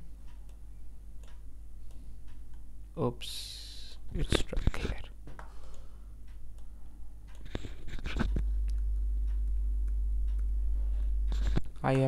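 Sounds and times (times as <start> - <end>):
faint low hum: 0.0 - 12.0
computer mouse clicks: 7.3 - 10.5.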